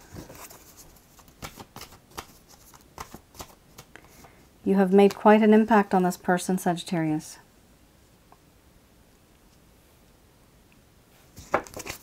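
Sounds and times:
cards being shuffled: 0.1s - 4.4s, 11.4s - 12.0s.

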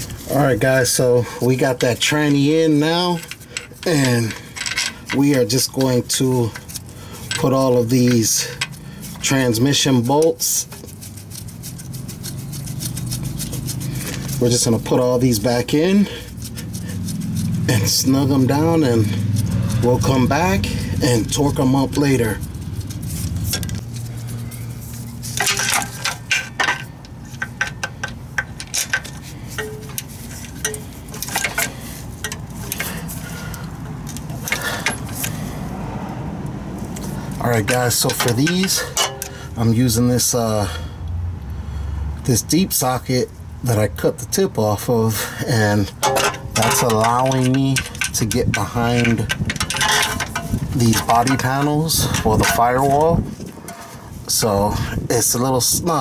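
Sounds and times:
metallic clinks of hand tools: 46.0s - 53.9s.

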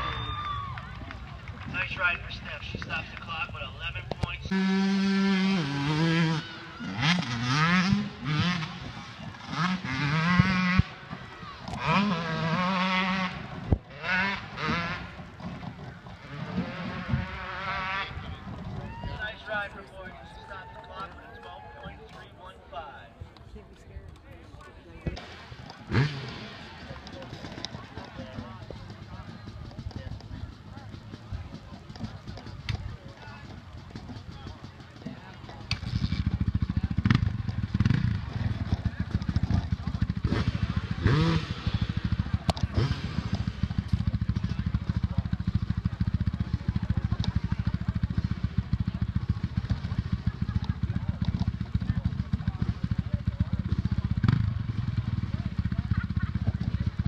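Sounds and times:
spectators chatting: 0.0s - 57.0s
dirt bike engine idling: 25.2s - 57.0s.

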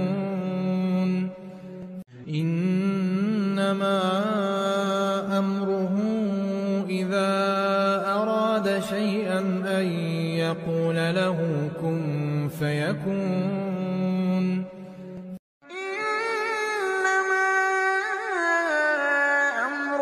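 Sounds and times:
man reciting melodically: 0.0s - 15.4s.

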